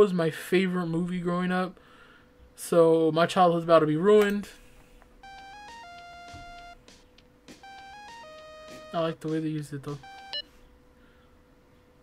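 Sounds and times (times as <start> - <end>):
faint steady hum: 0.0 - 12.0
phone ringtone beep: 5.2 - 6.8, 7.5 - 10.5.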